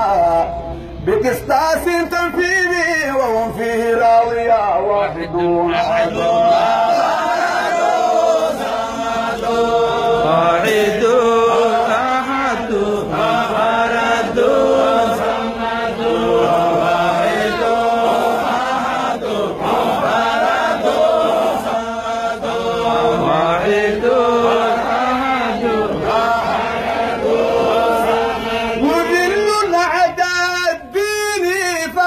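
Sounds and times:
men chanting hymn over microphone: 0.0s - 32.0s.

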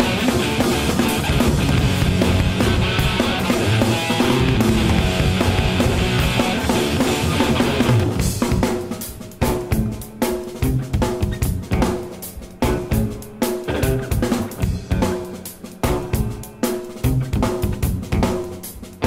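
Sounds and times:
held pitched band notes: 0.0s - 18.4s
drum kit playing busy pattern: 0.0s - 19.0s.

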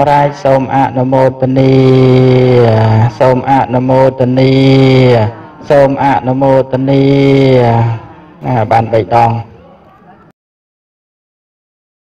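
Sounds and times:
man chanting in monotone: 0.0s - 9.7s.

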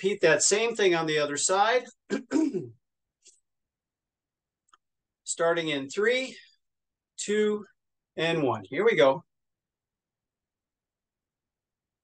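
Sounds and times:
man clearing his throat: 2.1s - 2.8s.

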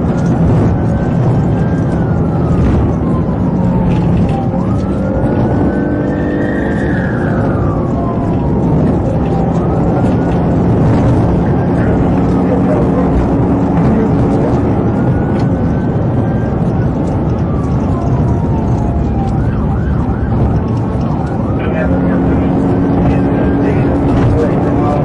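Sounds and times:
car engine and tyre noise: 0.0s - 25.0s
police siren wailing: 0.0s - 25.0s.

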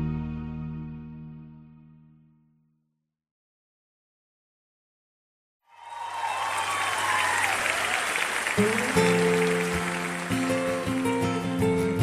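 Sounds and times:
audience cheering: 5.7s - 11.5s
acoustic guitar strumming: 8.5s - 12.0s.

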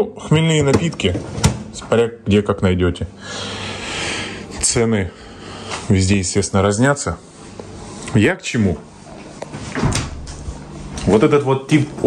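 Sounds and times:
refrigerator door shutting: 0.6s - 1.8s, 9.7s - 10.3s.

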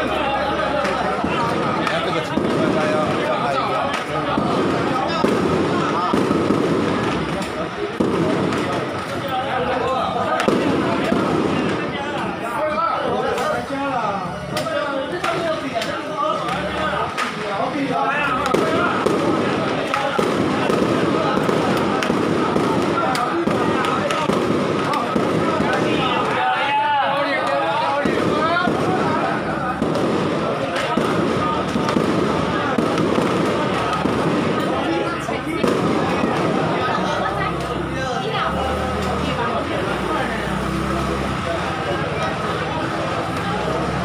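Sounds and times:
crowd voices: 0.0s - 44.0s
firecrackers popping: 0.0s - 44.0s.

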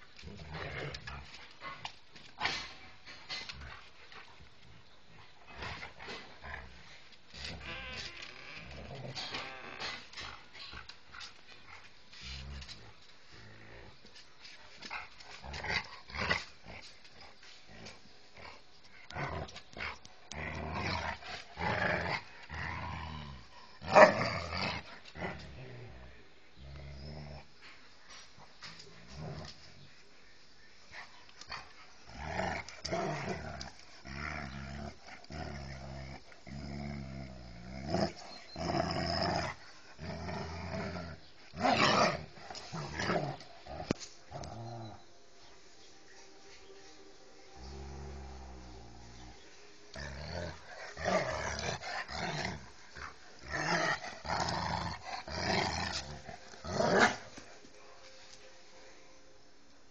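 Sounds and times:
dogs growling while play-fighting: 0.2s - 27.6s, 28.4s - 29.9s, 31.0s - 45.0s, 47.6s - 57.6s.

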